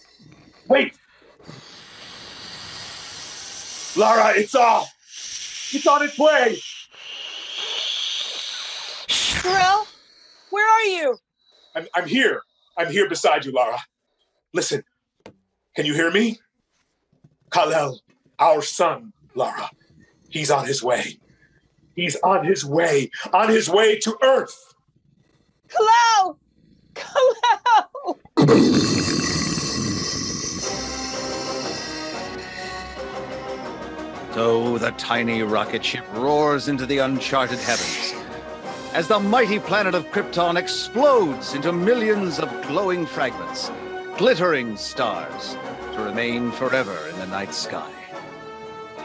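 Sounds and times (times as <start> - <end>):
rocket blasting off hiss: 1.5 - 4.3, 7.0 - 9.8
dramatic music: 29.1 - 49.0.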